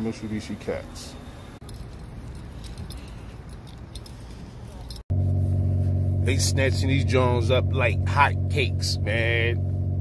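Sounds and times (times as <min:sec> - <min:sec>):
car engine idling with exhaust drone: 0:01.7 - 0:10.0.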